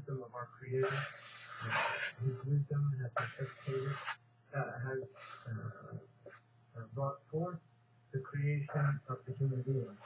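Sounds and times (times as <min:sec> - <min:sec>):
marker drawn across paper: 0:00.8 - 0:02.5, 0:03.2 - 0:04.2.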